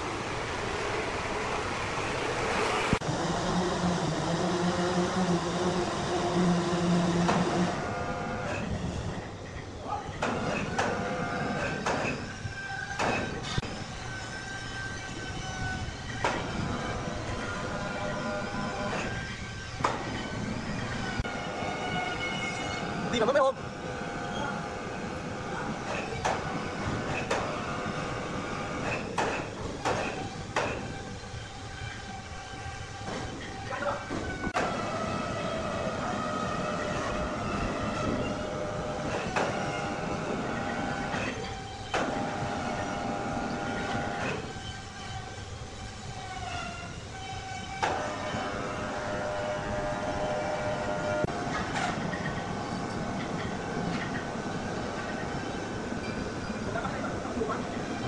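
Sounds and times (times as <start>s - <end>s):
band sawmill humming and whining: 0.0s - 58.0s.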